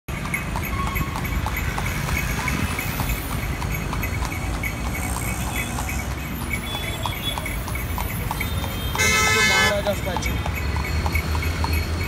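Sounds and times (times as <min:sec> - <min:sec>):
horse hooves clip-clopping on road: 0:00.1 - 0:12.0
low rumble of street traffic: 0:00.1 - 0:12.0.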